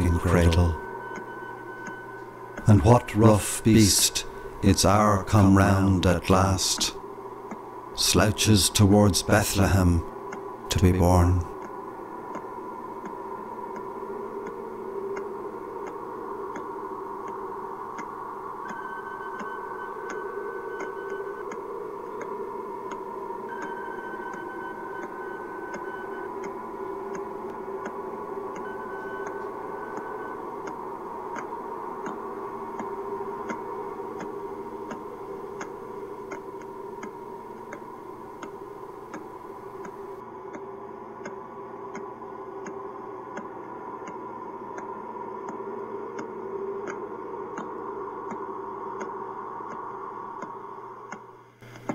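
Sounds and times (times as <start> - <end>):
held higher tones: 0.0 - 40.2
low electronic drone: 0.0 - 51.0.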